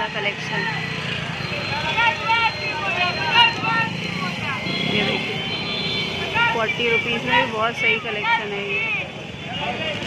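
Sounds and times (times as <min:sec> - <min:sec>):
people talking: 0:00.0 - 0:00.8, 0:06.4 - 0:08.8
road traffic rumble: 0:00.0 - 0:10.0.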